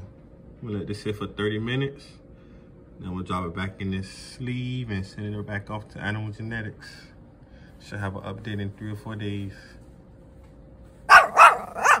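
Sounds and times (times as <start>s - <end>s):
dog barking: 11.1s - 12.0s.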